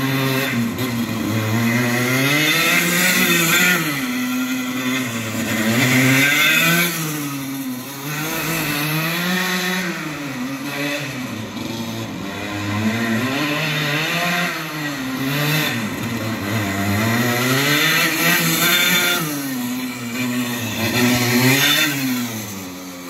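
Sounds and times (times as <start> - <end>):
go-kart engine revving: 0.0 - 23.0.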